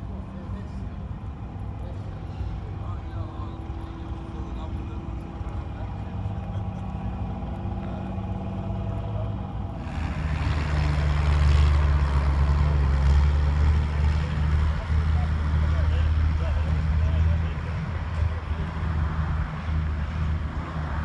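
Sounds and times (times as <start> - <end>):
deeper louder engine: 0.0 - 21.0
engine running steadily: 0.0 - 21.0.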